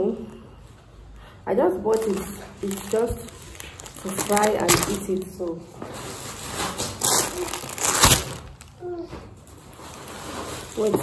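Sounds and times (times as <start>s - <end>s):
shopping bag crinkling: 1.8s - 8.8s, 9.4s - 11.0s.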